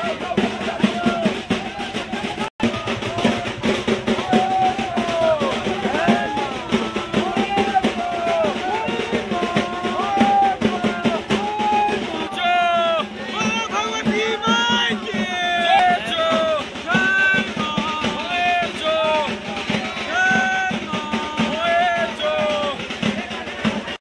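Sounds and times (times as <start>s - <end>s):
crowd: 0.0s - 24.0s
festival music with fast drumming: 0.0s - 24.0s.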